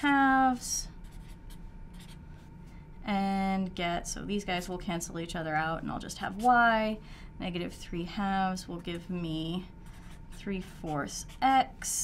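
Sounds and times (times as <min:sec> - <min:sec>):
marker pen writing on paper: 0:01.0 - 0:02.2, 0:08.8 - 0:11.6.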